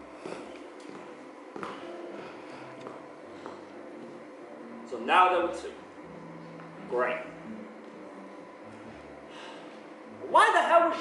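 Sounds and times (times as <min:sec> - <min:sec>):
high heels clicking on stage floor: 0:00.2 - 0:04.2.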